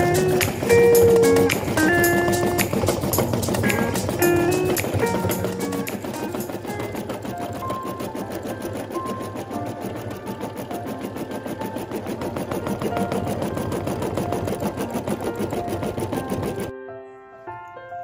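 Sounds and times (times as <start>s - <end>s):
embroidery machine stitching: 0.0s - 16.7s.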